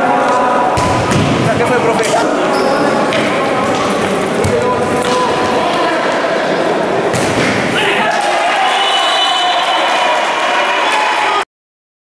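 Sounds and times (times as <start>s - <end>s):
voices in a hall: 0.0s - 11.4s
ball thump: 0.8s - 1.6s, 7.1s - 7.8s.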